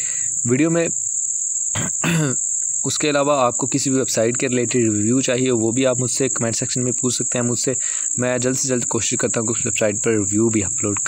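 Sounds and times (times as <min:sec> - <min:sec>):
steady high-pitched whine: 0:00.0 - 0:11.0.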